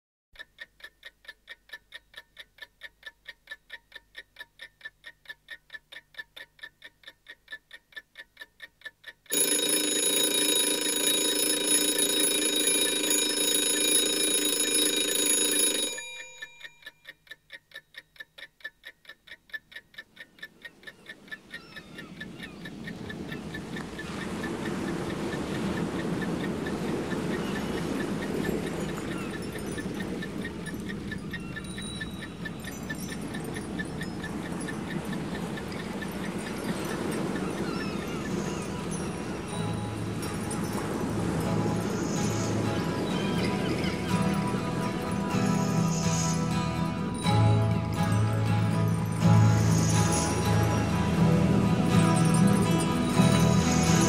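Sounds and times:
clock ticking rapidly: 0:00.4 - 0:26.5
alarm clock bell ringing: 0:09.3 - 0:17.0, 0:28.6 - 0:44.3, 0:45.3 - 0:54.0.

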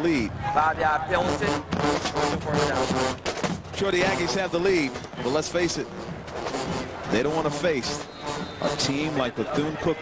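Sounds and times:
football commentator talking: 0:00.0 - 0:03.0, 0:03.7 - 0:06.0, 0:07.0 - 0:10.0.

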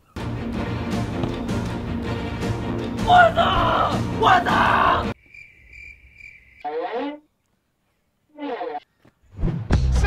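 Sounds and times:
music: 0:00.2 - 0:05.2, 0:09.4 - 0:10.0
cricket chirping: 0:05.2 - 0:07.2.

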